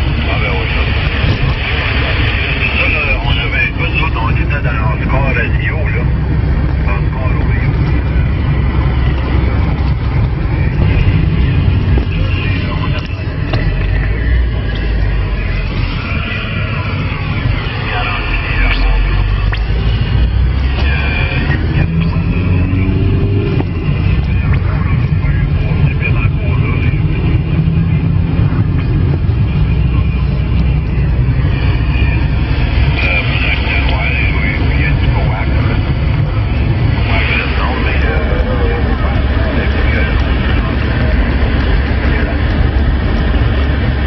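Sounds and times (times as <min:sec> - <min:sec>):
weak voice over radio: 0:00.0 - 0:20.0, 0:20.6 - 0:43.5
radio static with low rumble: 0:00.0 - 0:44.0.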